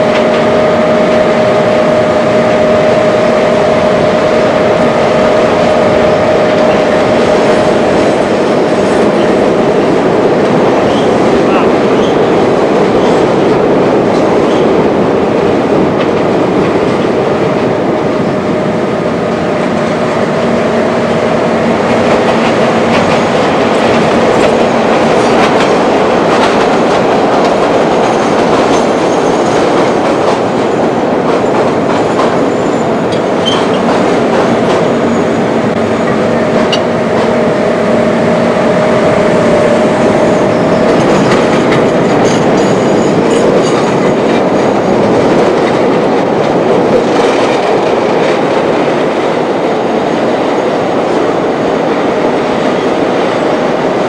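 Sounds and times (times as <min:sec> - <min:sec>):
rail joint clicks: 0:00.0 - 0:17.6, 0:19.2 - 0:54.0
train wheels rumbling on rail: 0:00.0 - 0:54.0.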